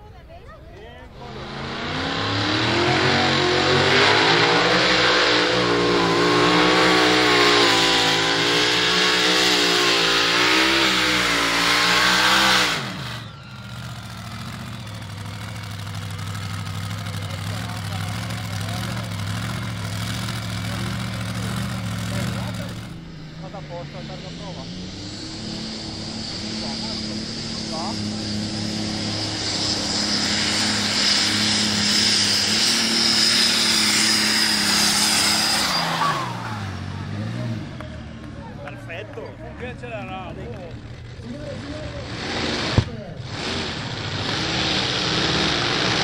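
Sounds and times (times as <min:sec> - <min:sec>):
engine running steadily: 0:00.0 - 0:46.0
loud engine wavering pitch: 0:01.0 - 0:46.0.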